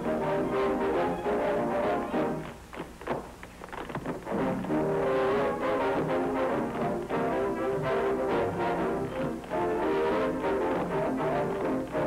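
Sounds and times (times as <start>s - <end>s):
orchestral dance music with brass: 0.0s - 2.7s, 4.2s - 12.0s.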